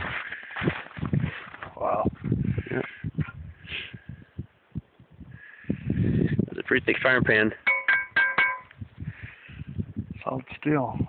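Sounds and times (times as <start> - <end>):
frying pan knocked ringing: 7.7 - 8.7.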